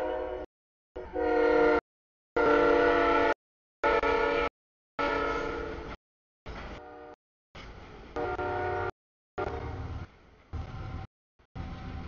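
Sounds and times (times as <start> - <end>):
locomotive air horn blasts: 0.0 - 1.8, 2.4 - 5.9, 6.8 - 7.2, 8.2 - 9.8.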